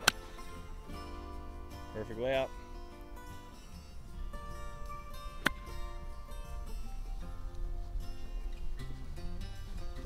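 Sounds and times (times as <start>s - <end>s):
golf club striking ball: 0.0s - 0.6s, 5.2s - 6.3s
acoustic guitar music: 0.0s - 10.0s.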